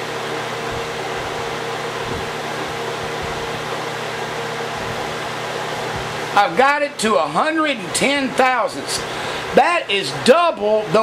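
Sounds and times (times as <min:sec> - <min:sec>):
steady background hum: 0:00.0 - 0:11.0.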